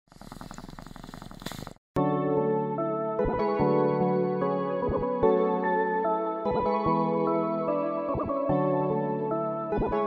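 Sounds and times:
music: 0:02.0 - 0:10.0.

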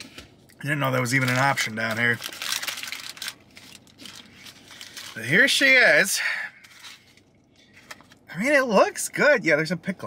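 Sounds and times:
paper wrapper crinkling: 0:00.8 - 0:06.0.

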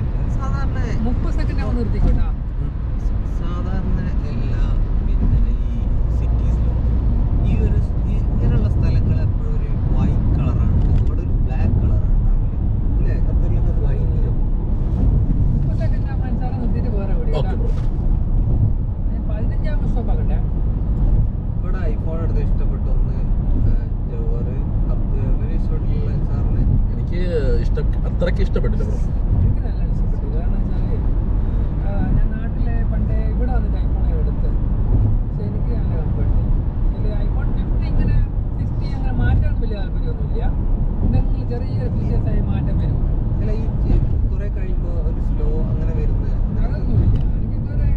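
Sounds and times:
people talking: 0:00.0 - 0:06.8, 0:07.4 - 0:14.4, 0:15.7 - 0:17.9, 0:19.1 - 0:20.4, 0:21.6 - 0:31.0, 0:31.8 - 0:34.6, 0:35.3 - 0:47.9
car road and engine rumble: 0:00.0 - 0:47.9.

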